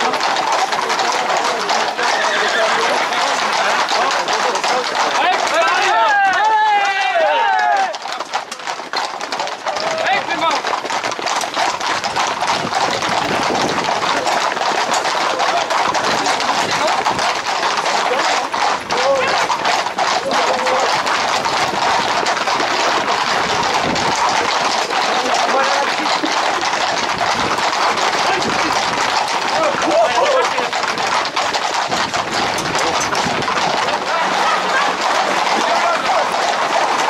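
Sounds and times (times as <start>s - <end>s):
people shouting: 0.0s - 8.4s, 9.3s - 10.8s, 14.1s - 37.0s
hooves clattering on asphalt: 0.0s - 37.0s.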